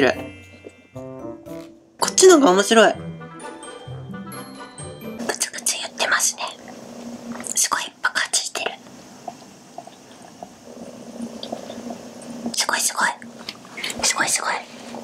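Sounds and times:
woman whispering breathily: 14.0 - 14.7.

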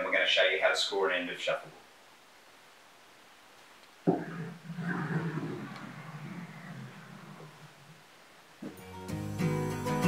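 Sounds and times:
puck gliding rumble: 4.0 - 8.7.

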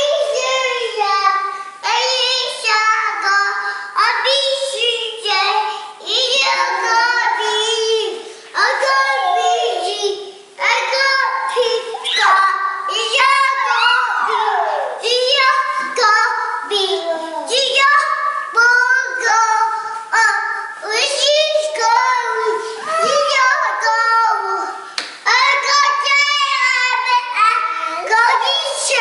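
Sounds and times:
child singing and babbling: 0.0 - 29.0.

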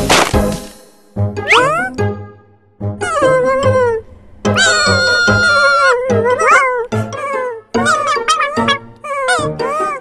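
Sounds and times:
children's background music: 0.0 - 10.0
cartoon kitten meowing cries: 1.4 - 2.1, 3.0 - 10.0.

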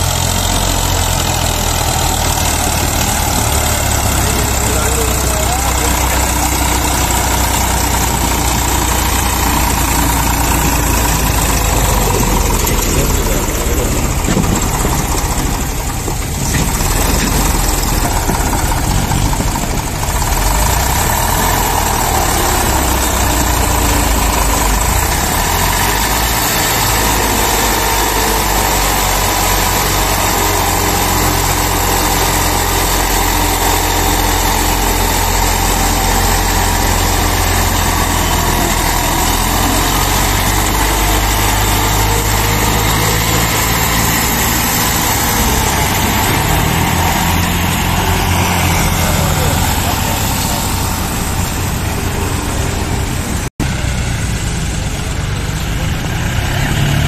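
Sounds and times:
tractor diesel engine under load: 0.0 - 57.0.

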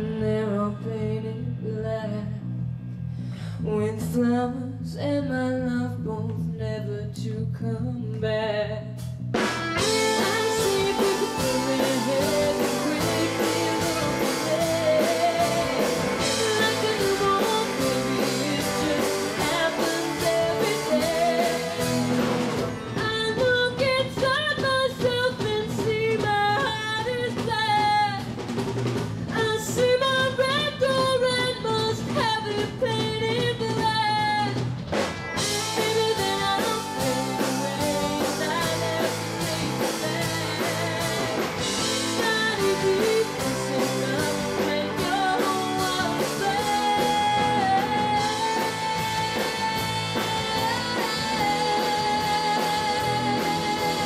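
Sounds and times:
electric guitar: 9.0 - 54.0
rock band drums: 9.0 - 54.0
person singing: 9.8 - 28.2, 35.4 - 54.0.

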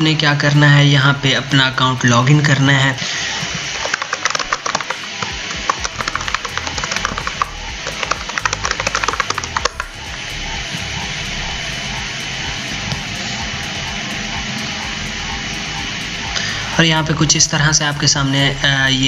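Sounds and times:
music bed: 0.0 - 19.0
keyboard typing: 3.0 - 12.0.

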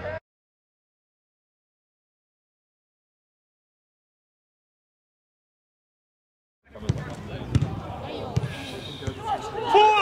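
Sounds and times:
football being kicked: 6.9 - 7.8
players shouting: 9.0 - 10.0.

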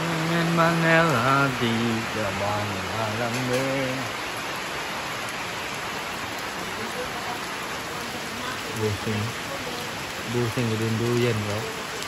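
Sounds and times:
heavy rain on roofs: 0.0 - 12.0.

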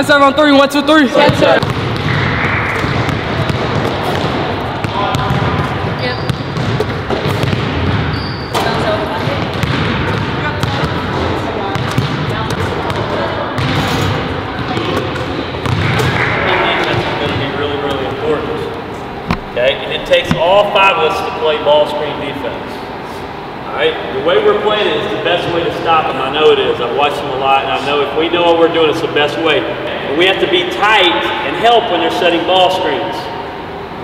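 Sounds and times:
players' voices echoing: 0.0 - 34.0
basketballs bouncing on wood floor: 1.2 - 16.2.

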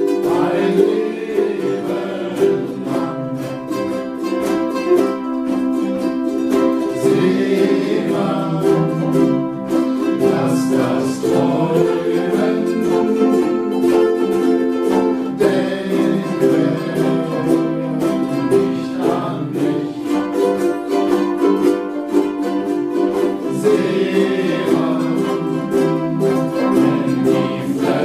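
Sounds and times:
men singing: 0.0 - 4.2, 6.8 - 21.2, 23.1 - 28.0
ukuleles strumming chords: 0.0 - 28.0.

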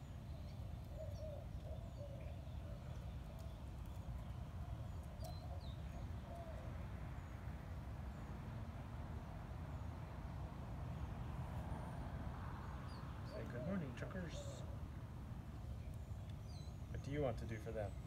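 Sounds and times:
birds chirping and warbling: 0.0 - 8.5, 12.6 - 18.0.

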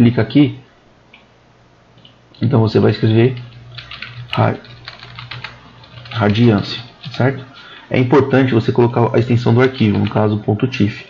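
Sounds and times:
typing on computer keyboard: 3.0 - 7.9, 9.6 - 10.3.

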